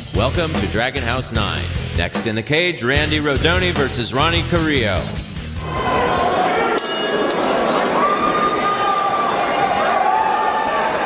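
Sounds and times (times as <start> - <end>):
crowd shouting and talking: 5.0 - 11.0.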